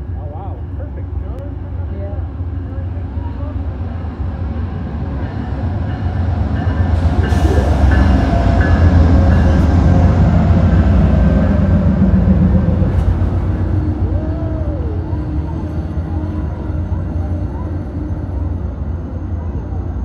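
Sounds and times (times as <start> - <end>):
passenger train passing: 0.0 - 20.0.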